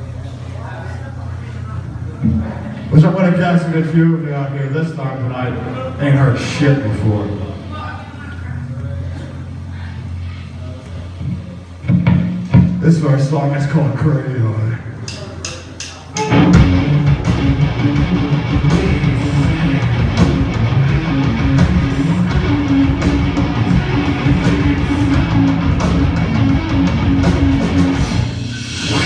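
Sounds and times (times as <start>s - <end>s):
rock band playing loud: 11.8s - 12.8s, 16.1s - 29.0s.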